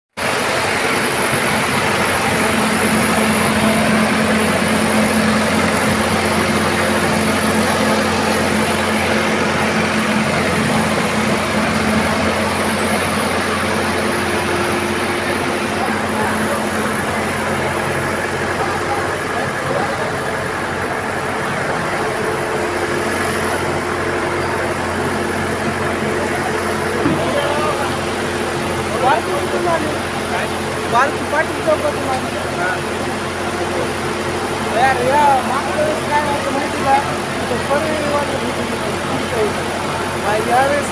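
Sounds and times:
engine running steadily: 0.1s - 40.9s.

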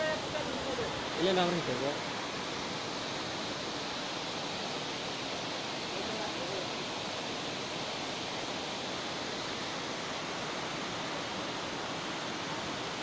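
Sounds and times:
river water rushing through gates: 0.0s - 13.0s.

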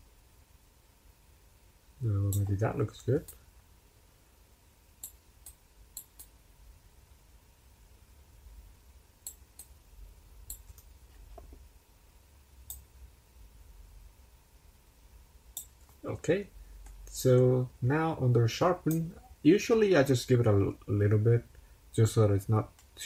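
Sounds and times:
computer mouse clicking: 5.0s - 6.4s, 9.2s - 9.8s, 10.4s - 11.6s.

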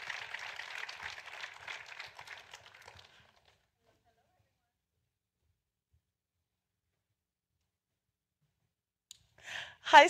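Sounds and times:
audience applauding: 0.0s - 3.6s.

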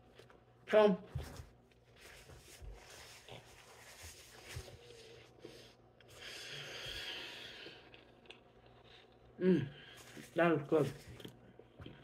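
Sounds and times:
quiet chewing: 4.7s - 10.3s.

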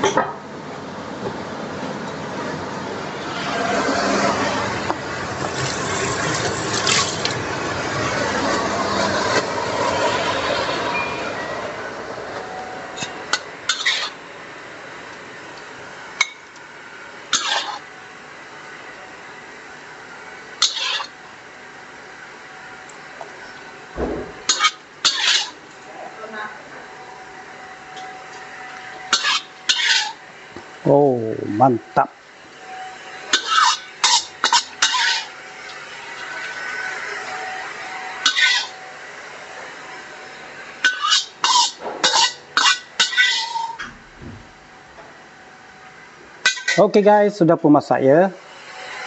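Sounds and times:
spatula stirring food in a wok: 20.6s - 21.2s.

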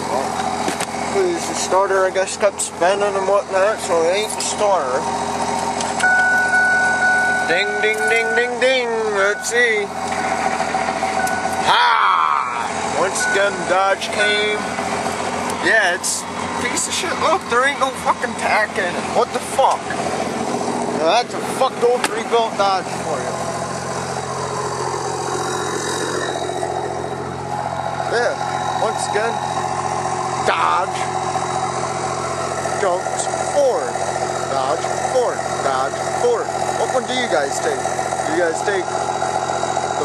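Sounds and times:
truck engine running: 0.0s - 40.0s
electronic warning chime: 6.0s - 10.5s, 11.2s - 11.6s, 13.1s - 14.8s.

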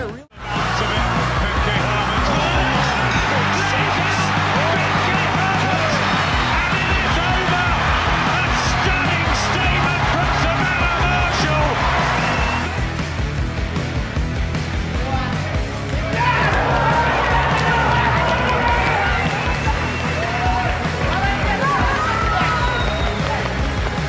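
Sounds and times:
background music with bass line: 0.0s - 24.0s.

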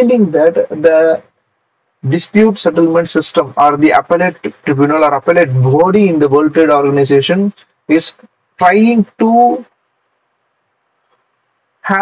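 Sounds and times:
man talking: 0.0s - 1.3s, 2.0s - 9.7s.

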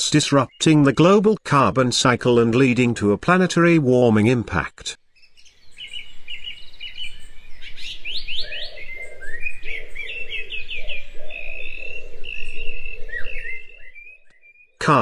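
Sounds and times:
birds chirping and trilling: 0.0s - 3.0s, 5.0s - 15.0s.

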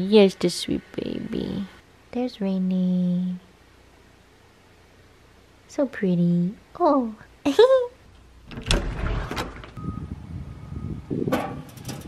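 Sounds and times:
low outdoor rumble: 0.0s - 12.0s
metal mailbox door knocks and clicks: 11.3s - 12.0s.

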